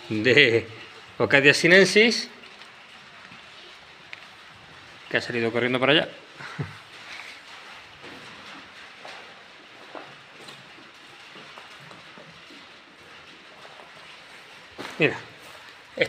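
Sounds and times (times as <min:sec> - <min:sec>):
faint background noise: 0:00.0 - 0:16.0
soft knocks and rustles: 0:06.6 - 0:16.0.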